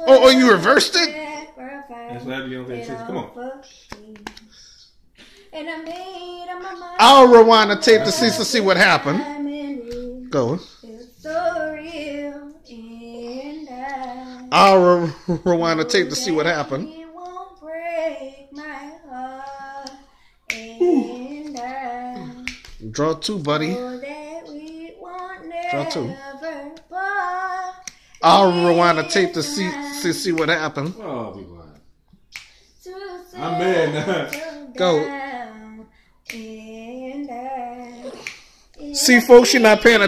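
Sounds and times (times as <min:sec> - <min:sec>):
person singing unaccompanied: 0:00.0 - 0:04.5, 0:05.5 - 0:31.8, 0:32.8 - 0:40.0.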